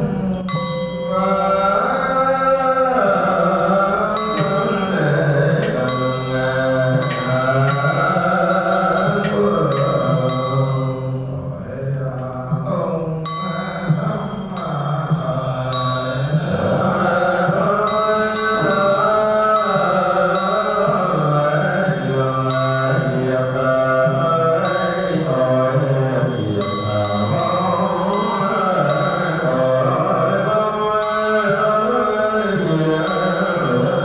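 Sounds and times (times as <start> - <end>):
music: 0.0 - 34.0
voices chanting slow melody: 0.0 - 34.0.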